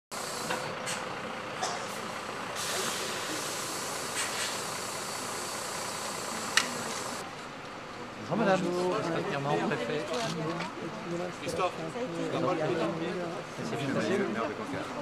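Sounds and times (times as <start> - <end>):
bus engine running: 0.1 - 15.0
pneumatic air hiss: 0.2 - 7.2.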